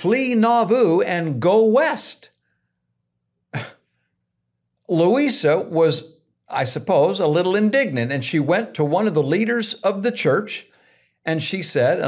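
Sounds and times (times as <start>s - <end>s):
man clearing his throat: 3.5s - 3.9s.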